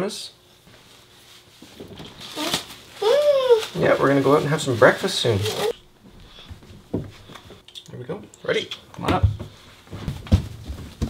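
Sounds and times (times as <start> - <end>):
clothing rustling: 0.6 - 7.6
diaper being handled: 1.6 - 5.8.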